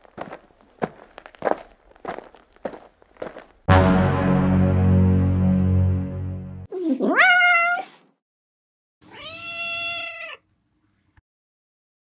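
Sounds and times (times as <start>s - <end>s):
cat meowing: 6.8s - 8.0s, 9.0s - 10.4s.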